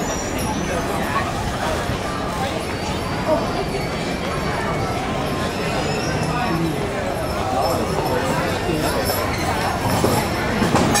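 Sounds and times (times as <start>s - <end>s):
crowd voices: 0.0s - 11.0s
train rolling: 0.0s - 11.0s.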